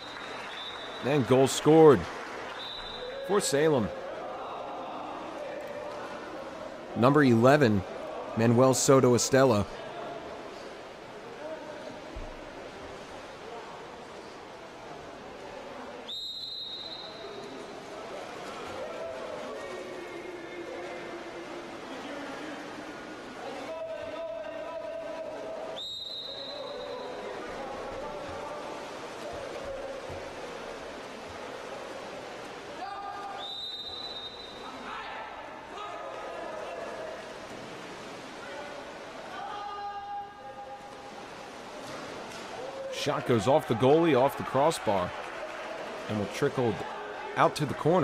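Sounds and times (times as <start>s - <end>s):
referee's whistle blasts: 2.6s - 3.4s, 16.1s - 17.4s, 25.8s - 27.2s, 33.4s - 34.8s
water splashing: 25.8s - 34.8s, 36.0s - 46.3s.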